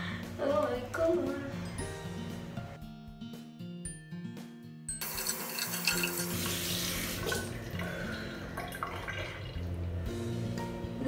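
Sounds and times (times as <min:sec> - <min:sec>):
background music: 0:00.0 - 0:11.0
tap water splashing into sink: 0:06.0 - 0:07.9, 0:08.6 - 0:09.7.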